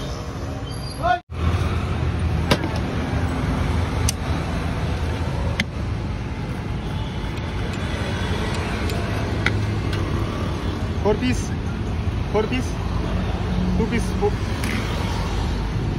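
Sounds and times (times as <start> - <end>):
street traffic rumble: 0.0 - 15.9.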